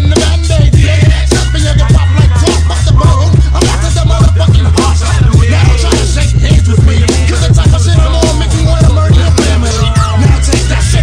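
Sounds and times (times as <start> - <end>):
deep heavy bassline: 0.0 - 11.0
rapping over a beat: 0.0 - 11.0
steady drum beat: 0.0 - 11.0.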